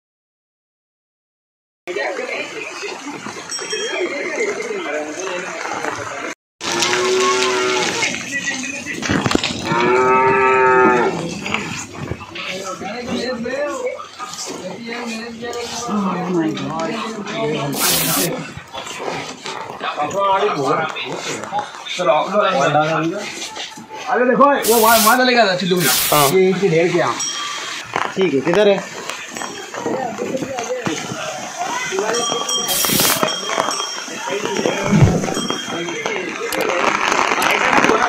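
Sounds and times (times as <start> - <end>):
cattle mooing: 6.6 - 8.1, 9.6 - 11.2
sharp hisses: 17.8 - 18.3, 24.6 - 25.2, 25.8 - 26.3, 32.7 - 33.2
man talking: 24.5 - 27.1.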